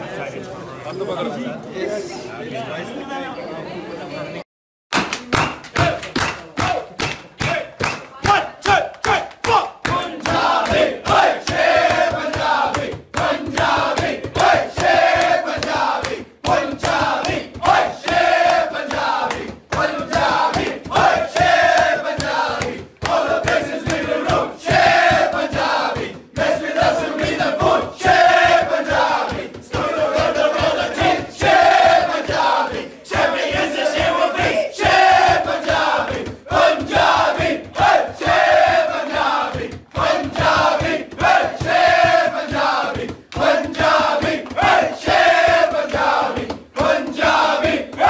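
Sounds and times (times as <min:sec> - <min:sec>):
fast steady beat: 0:05.2 - 0:48.0
men chanting in unison: 0:08.7 - 0:48.0.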